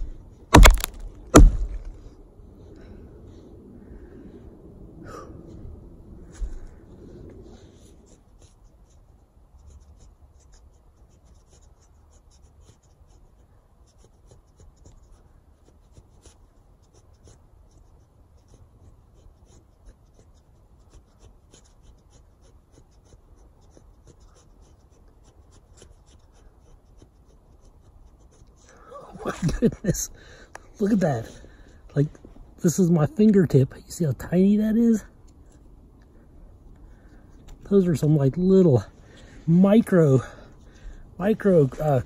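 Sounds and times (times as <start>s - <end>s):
axe blade scraping wood: 0.0s - 2.0s.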